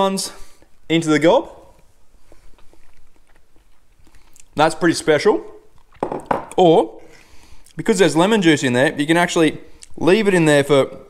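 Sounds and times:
person chewing wetly: 1.7 - 4.6, 5.6 - 6.1
small mouth clicks: 2.4 - 4.6.

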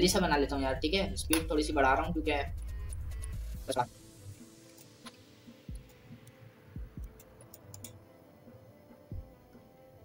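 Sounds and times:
computer mouse clicks: 7.0 - 8.0.

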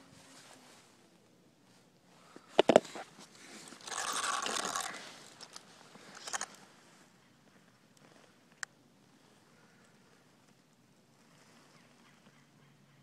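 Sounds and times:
scraping rustle: 1.7 - 7.0.

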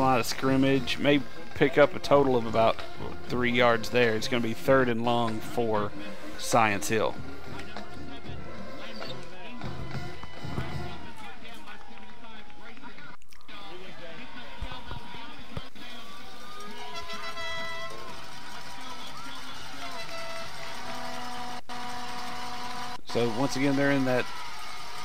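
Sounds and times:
music: 0.0 - 13.0, 13.8 - 25.0
crowd voices: 0.0 - 25.0.

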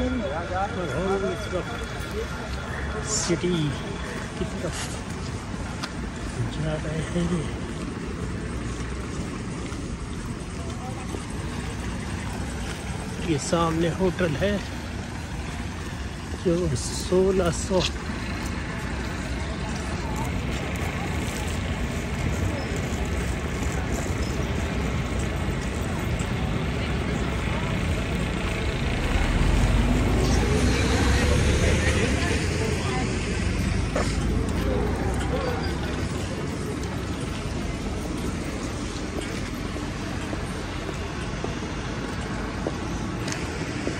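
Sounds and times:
cars and buses passing on wet road: 0.0 - 43.9
deep vehicle rumble: 0.0 - 43.9.

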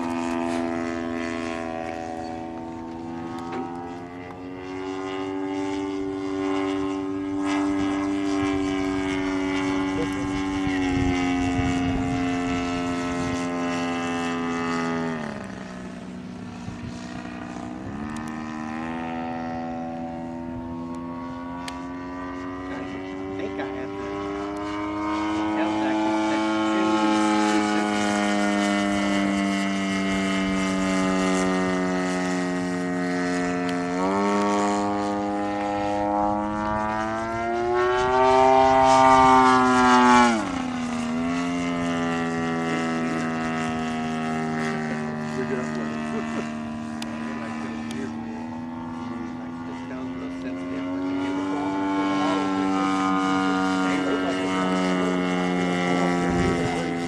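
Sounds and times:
model plane engine and propeller: 0.0 - 57.0.

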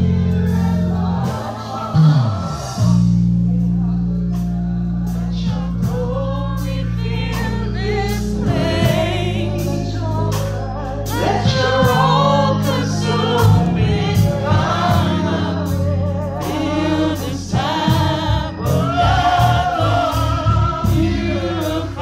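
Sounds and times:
group singing gospel: 0.0 - 22.0
low bass notes: 0.0 - 22.0
steady beat: 7.3 - 22.0.

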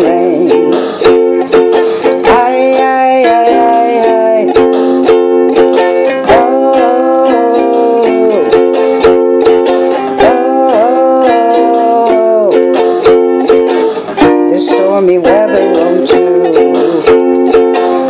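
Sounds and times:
wordless sung vocals: 0.0 - 9.0, 9.8 - 18.0
ukulele strumming: 0.0 - 18.0.

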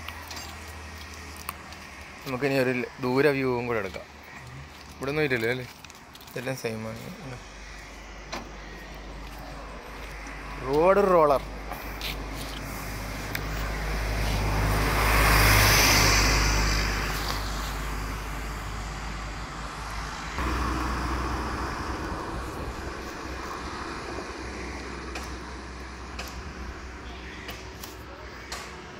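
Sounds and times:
vehicles passing: 0.0 - 28.9.

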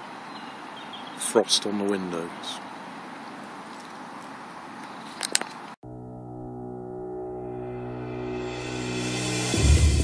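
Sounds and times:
outdoor background noise: 0.0 - 5.8
ambient music held chord: 5.8 - 10.0.

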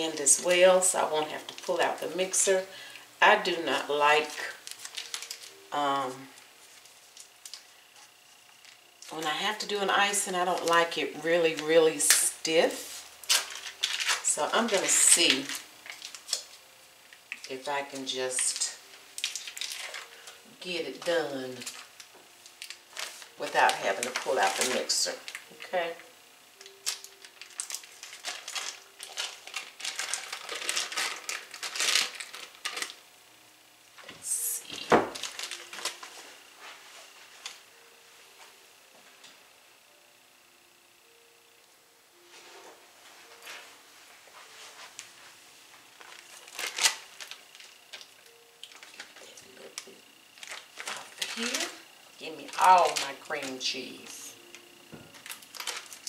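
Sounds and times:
foil and paper wrappers crinkling: 0.0 - 16.6, 17.2 - 26.0, 26.6 - 33.0, 34.0 - 36.8, 46.0 - 56.0.

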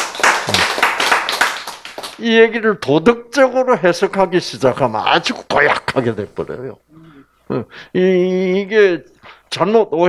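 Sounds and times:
audience clapping: 0.0 - 2.2.

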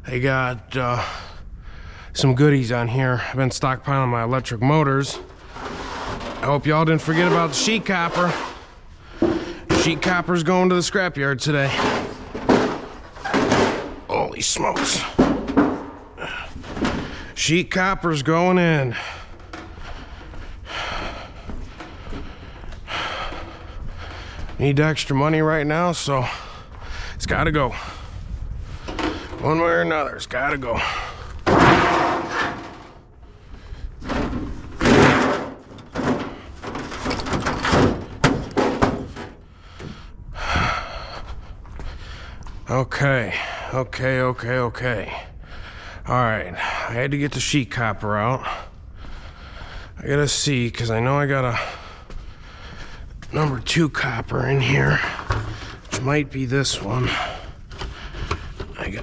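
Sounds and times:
sheet metal scraping and rattling: 3.9 - 26.5, 27.2 - 40.0
metal sheets scraping and knocking: 4.8 - 10.6, 11.4 - 17.4, 30.8 - 33.0.

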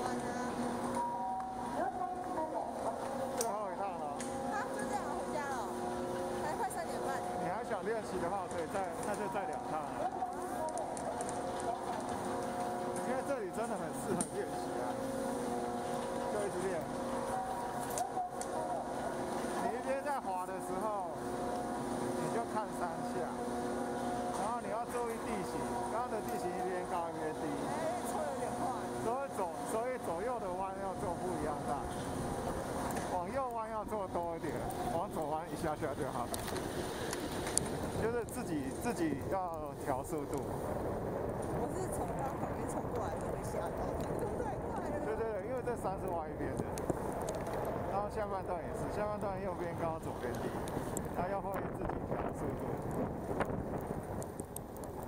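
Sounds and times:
indistinct voices: 0.0 - 36.6
chairlift machinery humming: 0.0 - 51.2.

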